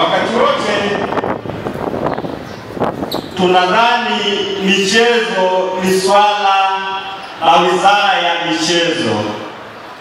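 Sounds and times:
wind noise on microphone: 0:00.0 - 0:05.4.

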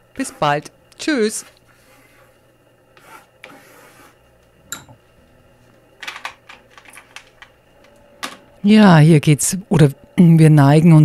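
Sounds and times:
crayon scratching on paper: 0:03.0 - 0:04.2.

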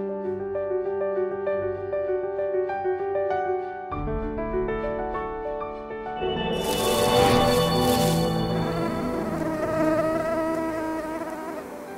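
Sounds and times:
whooshing rush: 0:06.2 - 0:09.5
mosquito buzzing: 0:06.6 - 0:11.9.

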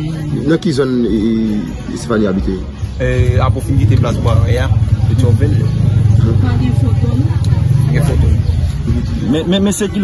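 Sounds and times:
engine rumbling: 0:02.7 - 0:10.0.

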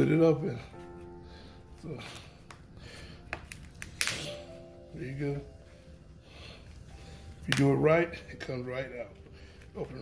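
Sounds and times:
lobster shell cracking: 0:03.3 - 0:04.3, 0:07.4 - 0:07.7.

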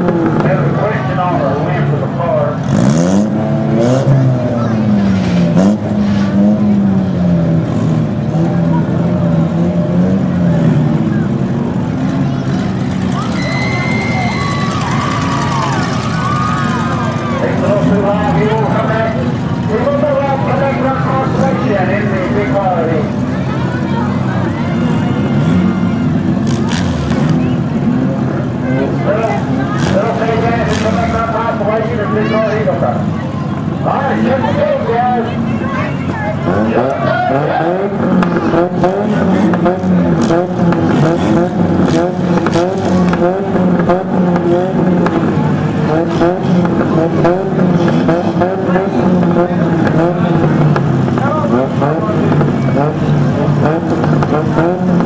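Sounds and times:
car engines revving: 0:00.0 - 0:55.0
crowd voices: 0:00.0 - 0:55.0.

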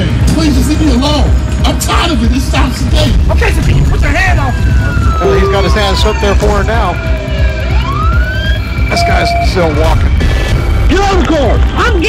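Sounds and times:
steady low rumble: 0:00.0 - 0:12.0
police siren wailing: 0:03.4 - 0:12.0.

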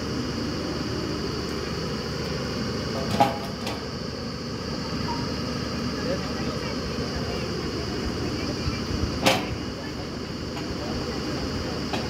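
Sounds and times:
drilling rig engine and compressor: 0:00.0 - 0:12.0.

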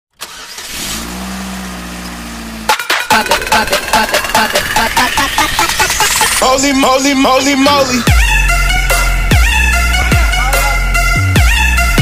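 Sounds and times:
car engine running hum: 0:00.3 - 0:02.8.

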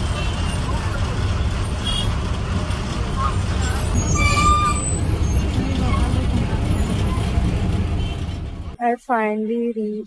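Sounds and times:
bus engine and road rumble: 0:00.0 - 0:10.0.

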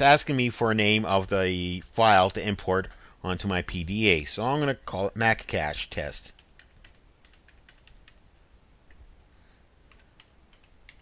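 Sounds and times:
faint keyboard typing: 0:06.2 - 0:11.0.

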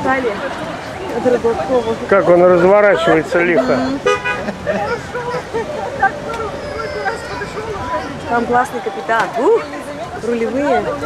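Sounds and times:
distant people chatting: 0:00.0 - 0:11.0
horn toot: 0:03.8 - 0:04.6.

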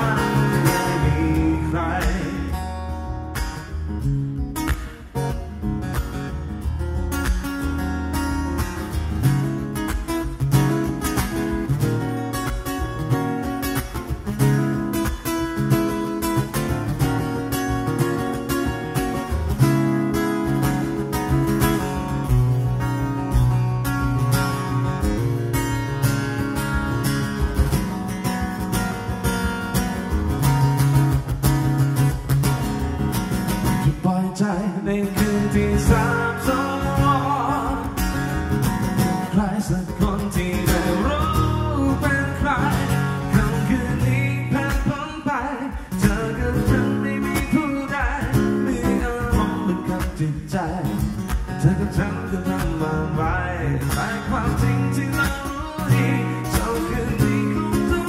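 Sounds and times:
acoustic guitar strummed chords: 0:00.0 - 0:58.0.

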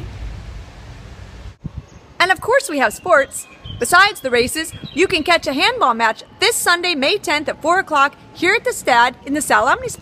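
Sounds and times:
wind rumbling on microphone: 0:00.0 - 0:05.6.

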